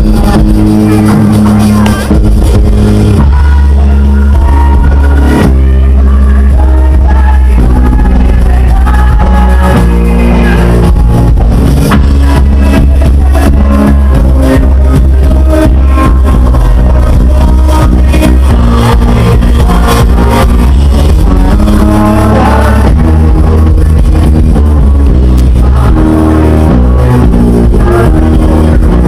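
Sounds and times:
heavy bass: 0.0 - 29.0
live band playing dance music: 0.0 - 29.0
steady drum beat: 0.0 - 29.0.

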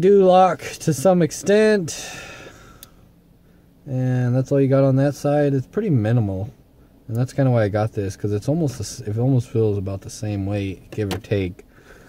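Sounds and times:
breath: 2.0 - 3.7, 11.7 - 12.0.

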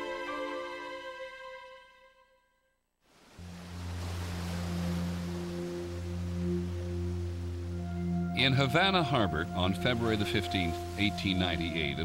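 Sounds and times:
surf breaking on rocks: 3.1 - 7.4.

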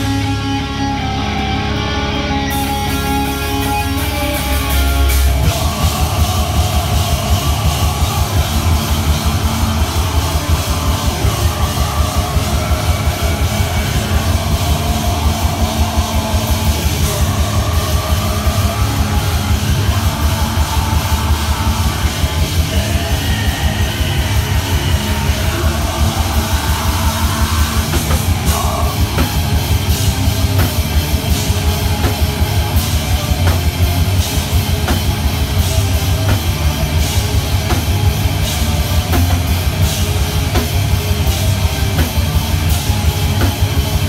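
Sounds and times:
distorted electric guitars: 0.0 - 44.0
fast pounding drum kit: 2.5 - 44.0.

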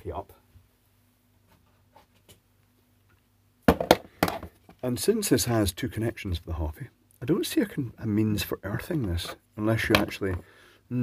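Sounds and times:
equipment knocking on wooden workbench: 3.7 - 4.5.

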